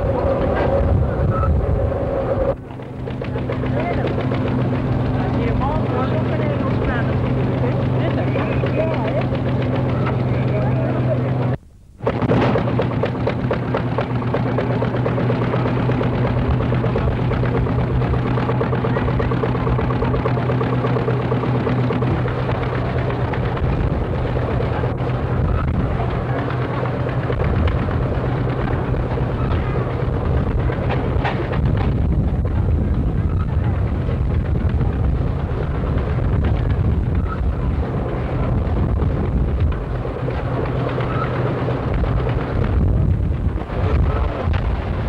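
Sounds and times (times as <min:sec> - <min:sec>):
constant crackle: 0:00.0 - 0:45.0
mechanical hum: 0:00.0 - 0:45.0.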